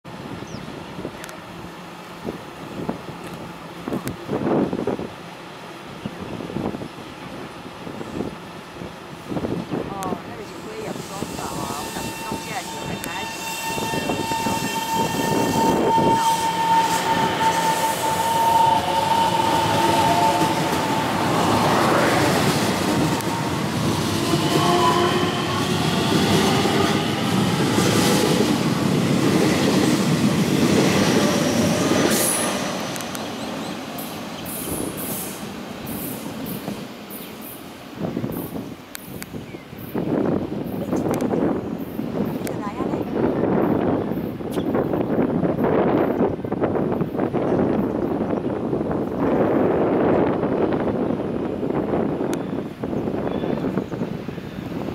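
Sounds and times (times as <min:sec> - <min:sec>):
wheel and rail noise: 0:00.2 - 0:54.9.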